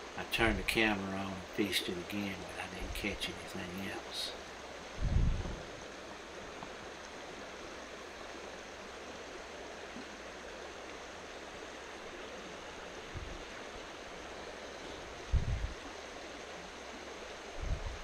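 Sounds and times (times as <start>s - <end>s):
stream running over riffle: 0.0s - 18.0s.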